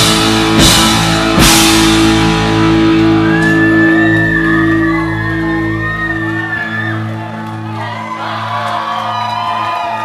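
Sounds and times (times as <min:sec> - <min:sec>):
punk rock band playing live: 0:00.0 - 0:07.4.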